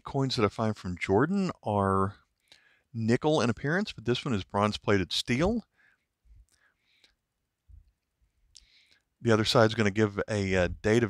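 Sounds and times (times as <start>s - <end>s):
faint breath and mouth noise: 5.8s - 9.1s.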